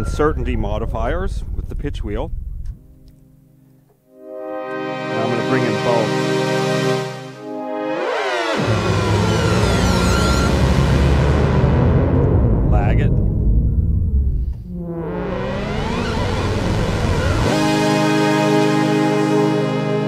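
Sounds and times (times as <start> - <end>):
sweeping synthesizer pad: 4.1 - 20.0.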